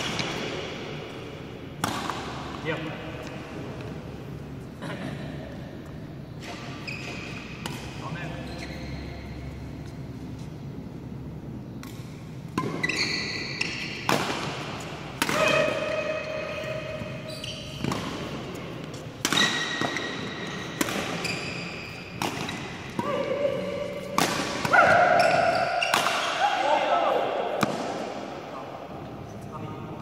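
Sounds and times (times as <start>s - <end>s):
racket striking shuttlecock: 1.8s - 2.6s, 11.8s - 17.2s, 17.8s - 23.2s, 23.8s - 26.4s, 27.6s - 28.1s
shoes squeaking on floor: 6.6s - 7.6s, 8.2s - 10.6s, 12.6s - 14.1s, 15.9s - 22.8s, 25.0s - 26.0s.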